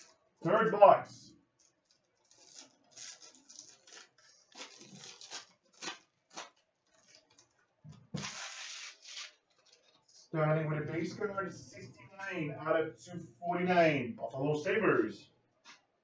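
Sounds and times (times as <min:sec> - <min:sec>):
packaging rustling and tearing: 0:01.5 - 0:10.3.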